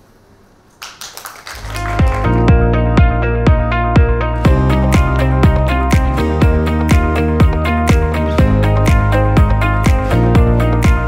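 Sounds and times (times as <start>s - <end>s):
audience applause: 0.8s - 2.5s
electronic music: 1.5s - 11.0s.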